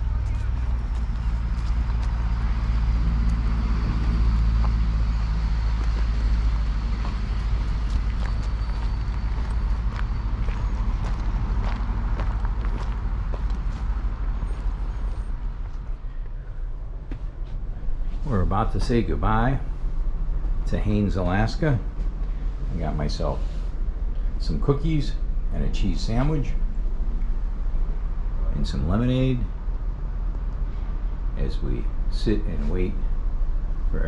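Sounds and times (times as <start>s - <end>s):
traffic noise: 0.0s - 34.0s
vehicle engine rumbling: 0.0s - 34.0s.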